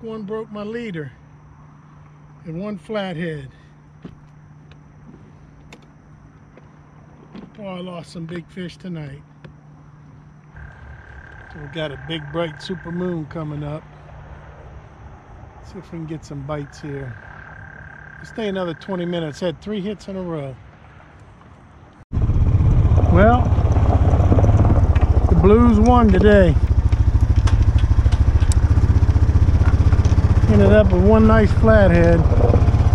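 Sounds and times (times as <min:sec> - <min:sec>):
faint outdoor background: 0:00.0 - 0:32.9
atv engine running: 0:10.6 - 0:13.6, 0:22.1 - 0:32.9
low hum: 0:22.1 - 0:32.9.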